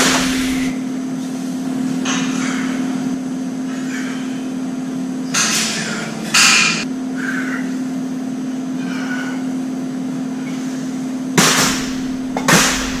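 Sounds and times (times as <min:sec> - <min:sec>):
steady low hum: 0:00.0 - 0:13.0
dumbbells clanking: 0:11.4 - 0:13.0.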